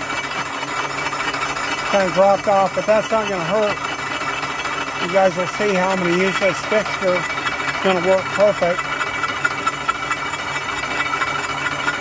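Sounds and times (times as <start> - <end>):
milling cutter cutting steel: 0.0 - 12.0
milling spindle hum: 0.0 - 12.0.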